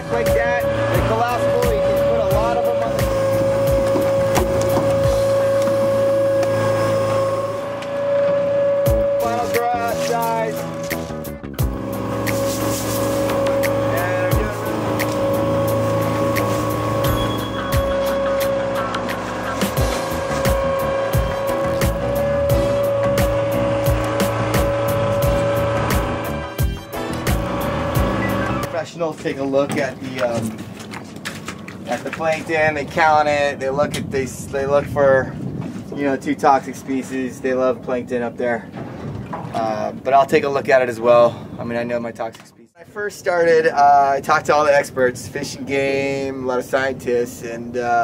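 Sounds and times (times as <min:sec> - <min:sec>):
boat machinery droning and whining: 0:00.0 - 0:42.1, 0:42.8 - 0:48.0.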